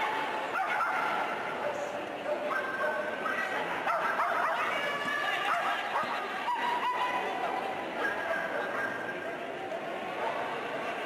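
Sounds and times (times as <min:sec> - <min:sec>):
murmur of arena crowd: 0:00.0 - 0:11.0.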